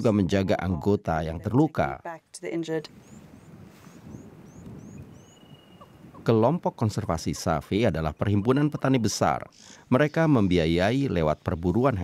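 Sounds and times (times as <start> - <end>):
bird chirping: 2.8 - 12.0.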